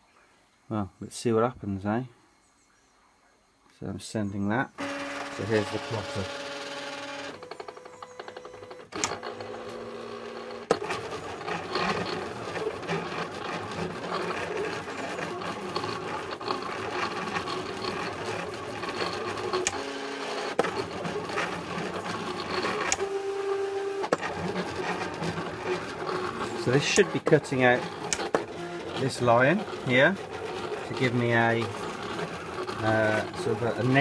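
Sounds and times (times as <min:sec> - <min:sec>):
cutting plotter motors whirring: 0:04.8 - 0:34.0.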